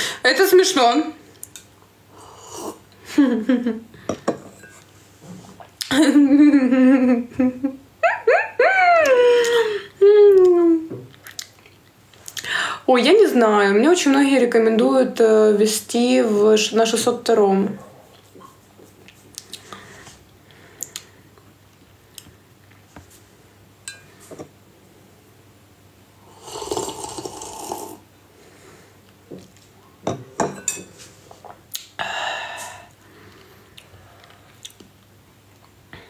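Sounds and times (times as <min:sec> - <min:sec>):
woman speaking: 0:00.2 - 0:01.2, 0:12.9 - 0:17.8
person slurping a drink: 0:26.2 - 0:28.0.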